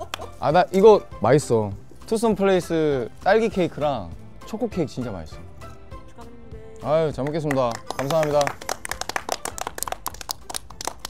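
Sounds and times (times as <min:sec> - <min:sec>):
people clapping: 0:00.0 - 0:00.4, 0:07.1 - 0:11.0.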